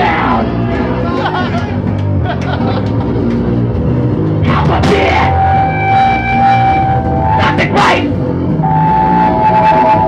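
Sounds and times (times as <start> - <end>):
live punk band playing: 0.0 - 10.0
electric guitar sustained notes: 4.7 - 10.0.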